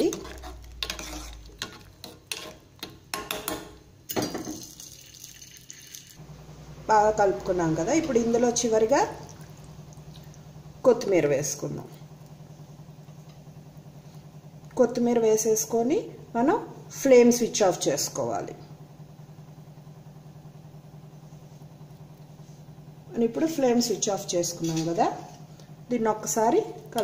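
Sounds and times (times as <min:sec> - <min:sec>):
metal ladle stirring in pot: 0:00.0 - 0:03.6
steady low hum: 0:00.0 - 0:04.2, 0:06.2 - 0:27.0.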